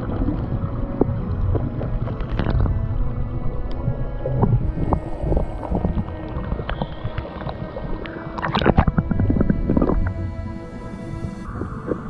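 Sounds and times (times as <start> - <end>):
underwater clicks and knocks: 0.0 - 2.9, 3.6 - 10.2
low underwater rumble: 0.0 - 12.0.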